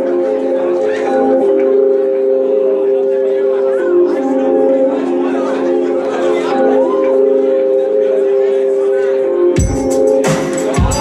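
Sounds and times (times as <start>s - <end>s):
sustained chords over sound system: 0.0s - 11.0s.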